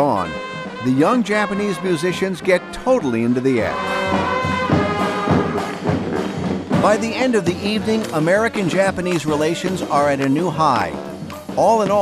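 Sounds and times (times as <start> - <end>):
brass band playing: 0.0 - 12.0.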